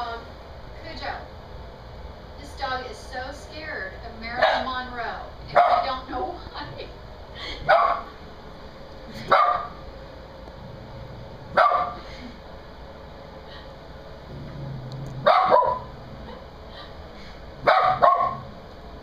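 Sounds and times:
dog barking: 0:04.4 - 0:04.8, 0:05.5 - 0:06.0, 0:07.7 - 0:08.1, 0:09.3 - 0:09.8, 0:11.6 - 0:12.0, 0:15.2 - 0:16.4, 0:17.6 - 0:18.5.

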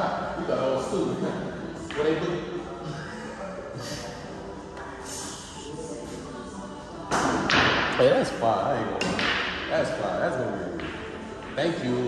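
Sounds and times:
quiet talk: 0:00.9 - 0:07.1.

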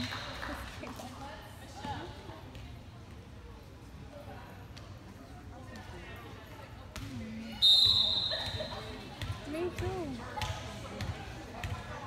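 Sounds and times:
voices in a hall: 0:00.0 - 0:12.0
referee's whistle blast: 0:07.6 - 0:08.7.

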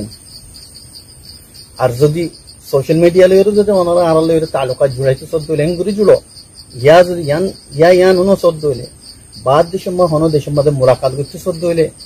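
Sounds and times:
man speaking: 0:01.7 - 0:12.0.

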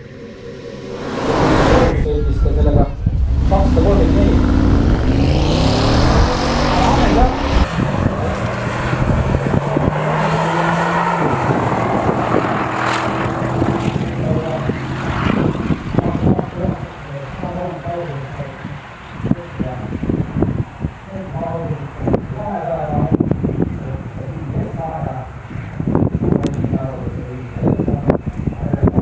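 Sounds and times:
car engine accelerating through gears: 0:00.0 - 0:16.4.

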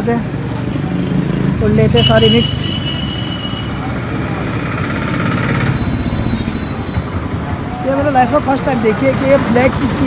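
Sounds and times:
street noise: 0:00.0 - 0:10.0
vehicle engine rumbling: 0:00.0 - 0:10.0.

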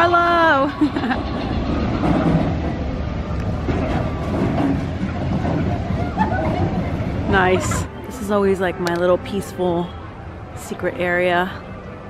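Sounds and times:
roller coaster rumbling on track: 0:00.0 - 0:12.0.

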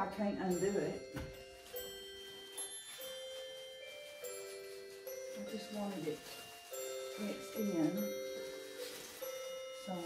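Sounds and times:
soft bell-like background music: 0:00.0 - 0:10.0.

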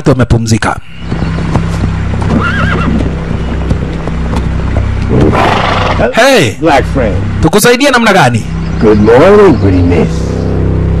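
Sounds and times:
hooves clip-clopping on dirt: 0:01.0 - 0:06.0
horse whinny: 0:02.2 - 0:03.1, 0:05.1 - 0:06.2.

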